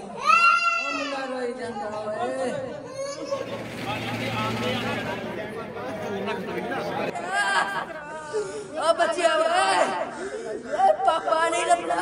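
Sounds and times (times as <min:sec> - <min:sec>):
people talking over one another: 0:03.4 - 0:10.1.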